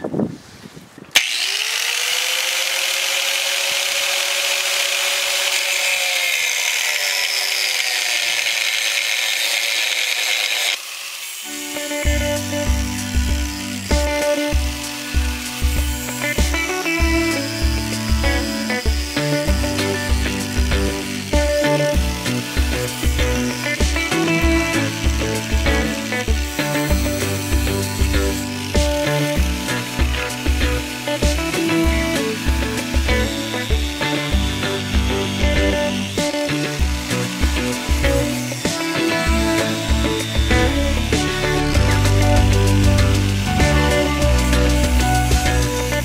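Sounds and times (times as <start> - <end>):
angle grinder cutting metal: 1.2 - 46.0
background music with steady beat: 11.7 - 46.0.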